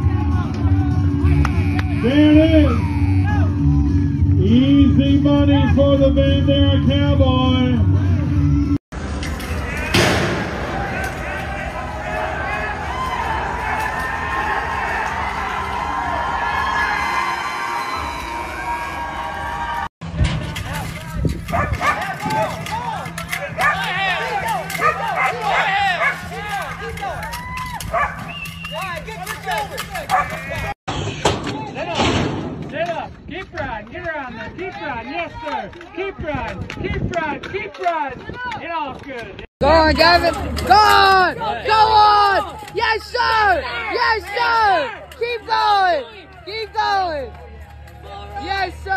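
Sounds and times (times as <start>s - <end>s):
crowd shouting and whooping: 9.5s - 19.9s, 23.5s - 30.8s.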